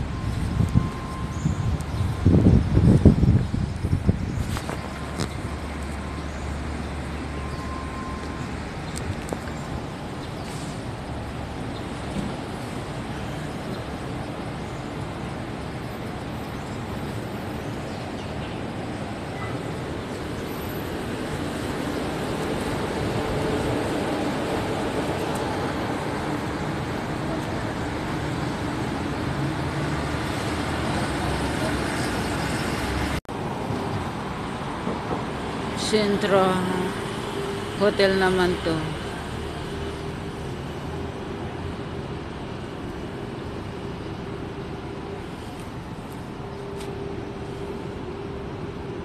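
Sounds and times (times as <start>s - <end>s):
traffic rumble: 0.0s - 49.0s.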